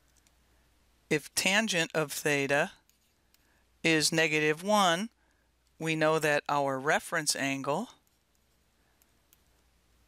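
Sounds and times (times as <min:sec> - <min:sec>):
soft clicks: 0:00.0 - 0:00.4, 0:08.0 - 0:09.7.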